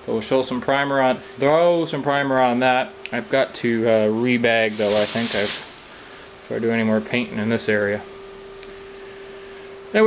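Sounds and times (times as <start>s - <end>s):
faint hiss: 4.2s - 10.0s
steady hum: 4.6s - 9.8s.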